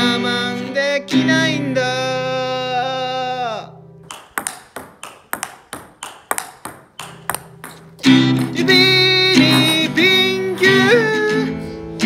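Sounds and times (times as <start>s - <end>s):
table tennis ball ticking: 4.1s - 8.6s
acoustic guitar strumming: 6.9s - 12.0s
person singing: 8.4s - 11.7s.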